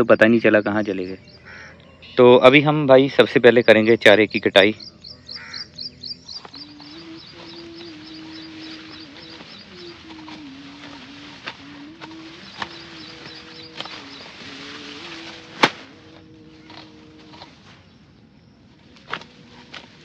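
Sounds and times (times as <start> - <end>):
bird chirping: 0.0 - 19.7
sickle snapping through stalks: 9.0 - 17.8, 18.9 - 20.0.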